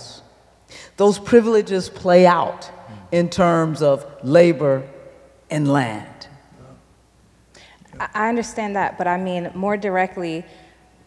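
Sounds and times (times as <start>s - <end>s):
person speaking: 1.0s - 6.8s
soft voices: 2.9s - 3.2s.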